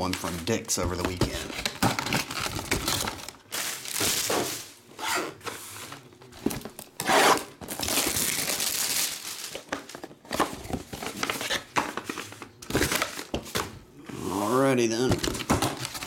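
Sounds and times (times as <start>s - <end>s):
plastic shrink wrap tearing: 0.0s - 4.8s, 6.7s - 10.1s.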